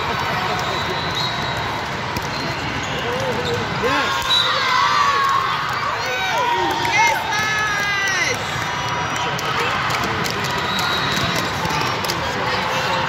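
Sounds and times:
voices shouting and cheering: 0.0 - 13.0.

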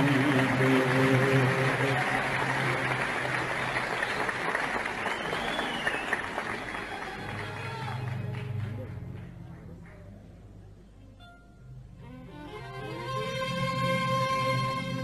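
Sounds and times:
audience applauding: 0.0 - 10.1.

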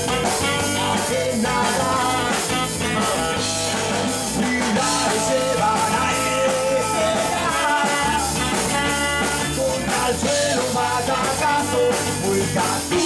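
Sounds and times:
ska reggae band playing live: 0.0 - 13.0.

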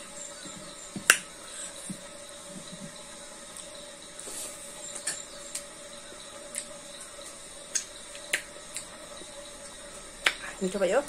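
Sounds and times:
faint hum: 0.0 - 11.0
lip smacks: 7.7 - 8.9.

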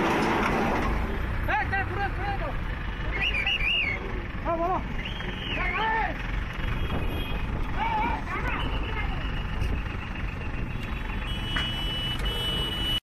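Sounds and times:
heavy vehicle engines rumbling: 0.0 - 13.0.

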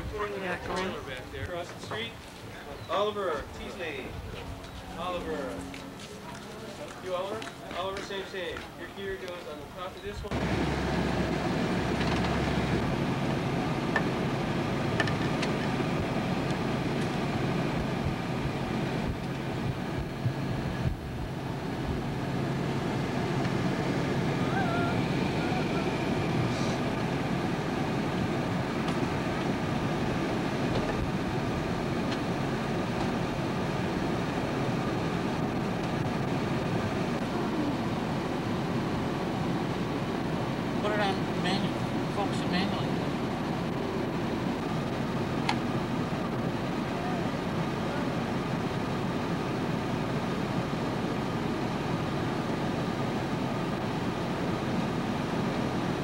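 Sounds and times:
low hum: 10.2 - 48.1
vehicle engine running: 10.2 - 56.0.

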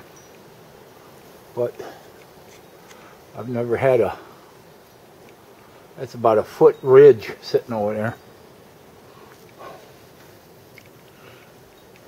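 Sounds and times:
steady background hiss: 0.0 - 12.0
man speaking: 1.6 - 2.0, 3.4 - 4.3, 6.0 - 8.2.

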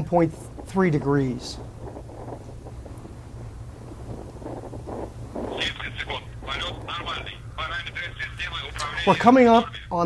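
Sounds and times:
steady low rumble: 0.0 - 10.0
faint voice over radio: 5.5 - 10.0.

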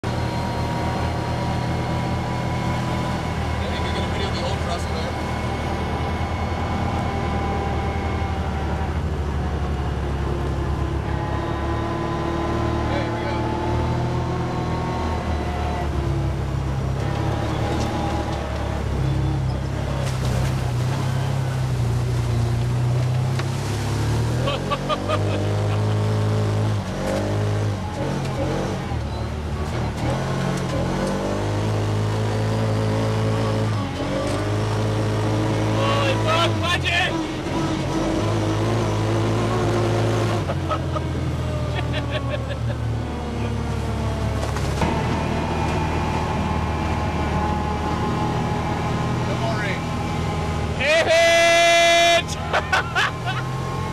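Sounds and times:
utility vehicle engine revving: 0.0 - 53.9.

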